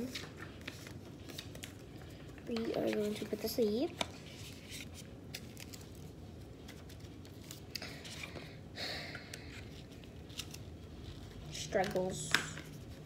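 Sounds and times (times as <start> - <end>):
paper and cardboard rustling: 0.0 - 8.4.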